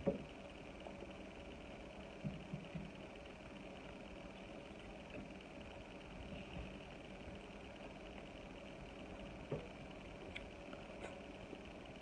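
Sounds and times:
quiet chewing: 0:10.2 - 0:11.3.

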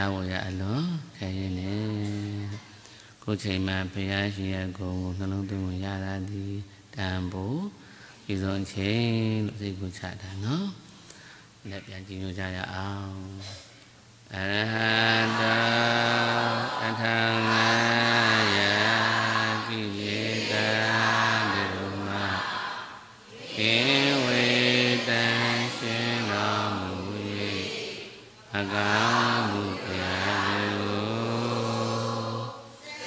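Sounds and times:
man chanting: 0:00.0 - 0:10.9, 0:11.6 - 0:13.6, 0:14.3 - 0:22.8, 0:23.5 - 0:27.9, 0:28.5 - 0:32.7.

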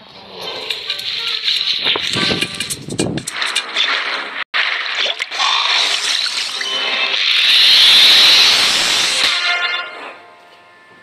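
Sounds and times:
hissing water-like sound effect: 0:04.6 - 0:09.4
cartoon background music: 0:05.0 - 0:10.9.

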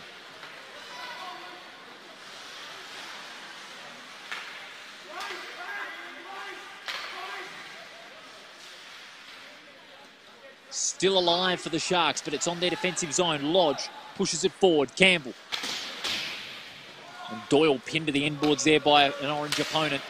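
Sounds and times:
skates hissing on ice: 0:00.6 - 0:06.0.

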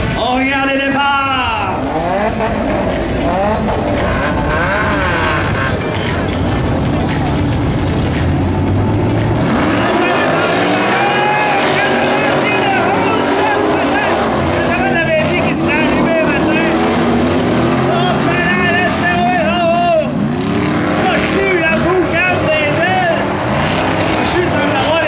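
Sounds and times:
race car engines revving: 0:00.0 - 0:25.0.

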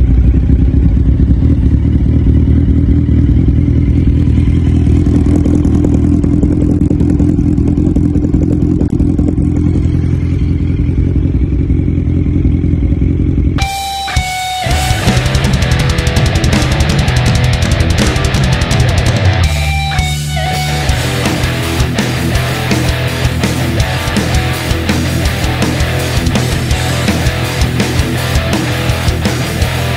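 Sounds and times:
motorcycle engine idling: 0:00.0 - 0:29.9
music: 0:13.6 - 0:29.9.

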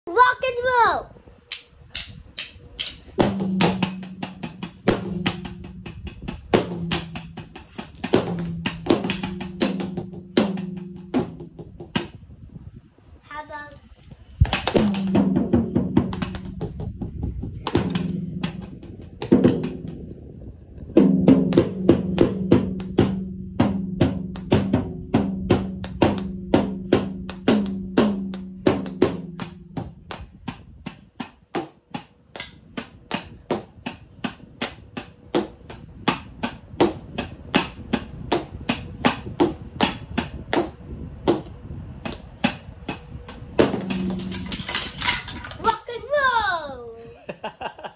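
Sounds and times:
drumsticks hitting toy drums: 0:01.5 - 0:03.1.

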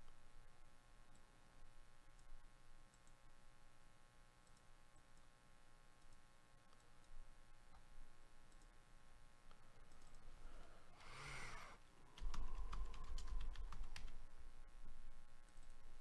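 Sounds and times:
low hum: 0:07.0 - 0:16.0
breathy rush of noise: 0:10.2 - 0:14.7.

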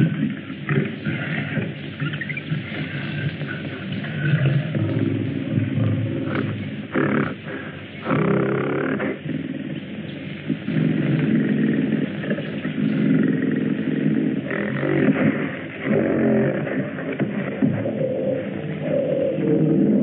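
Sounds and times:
large animal roaring: 0:17.9 - 0:20.0.

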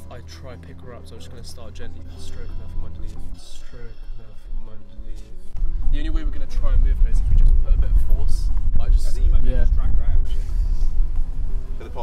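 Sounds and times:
men's voices: 0:00.0 - 0:11.1, 0:11.7 - 0:12.0
constant low rumble: 0:00.0 - 0:12.0.

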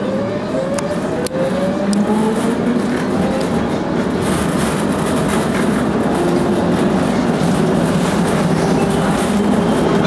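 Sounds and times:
tram drive hum: 0:00.0 - 0:10.0
steel wheels on rails: 0:00.7 - 0:10.0.

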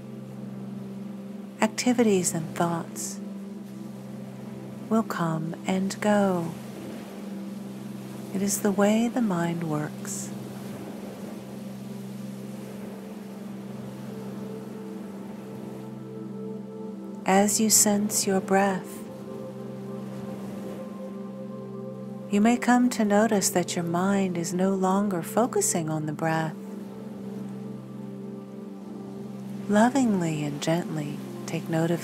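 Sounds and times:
ambient music drone: 0:00.0 - 0:32.0
faint steady hiss: 0:00.0 - 0:32.0.

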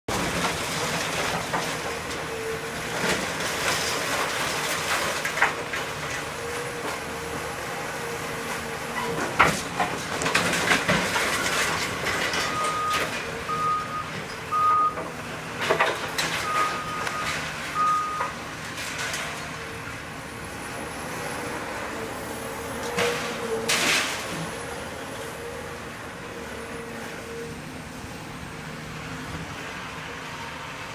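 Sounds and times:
demolition machinery running: 0:00.1 - 0:30.9.

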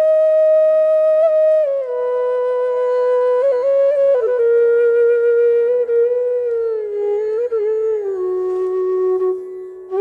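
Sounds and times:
bamboo flute note sliding: 0:05.7 - 0:10.0.

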